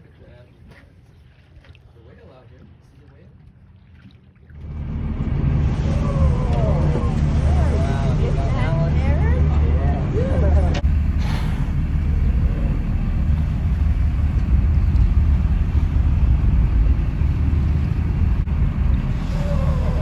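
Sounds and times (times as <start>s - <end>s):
boat engine low rumble: 0.0s - 20.0s.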